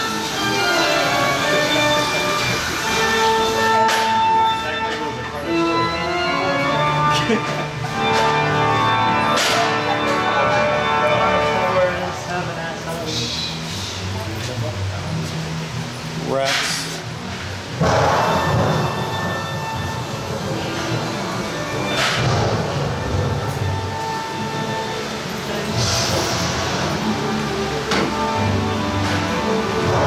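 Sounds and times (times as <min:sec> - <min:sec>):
orchestral soundtrack: 0:00.0 - 0:12.1.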